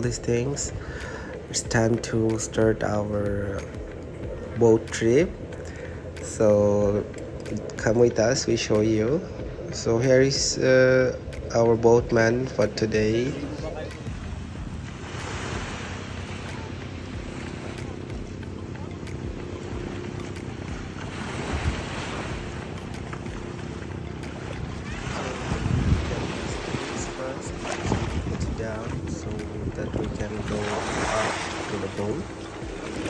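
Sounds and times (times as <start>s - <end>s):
boat engine running: 0.0s - 33.0s
water wash: 0.0s - 33.0s
wind buffeting microphone: 0.0s - 33.0s.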